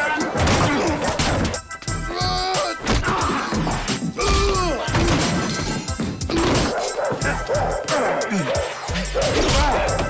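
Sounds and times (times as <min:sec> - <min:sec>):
dramatic film score: 0:00.0 - 0:10.0
dogs barking: 0:06.2 - 0:10.0.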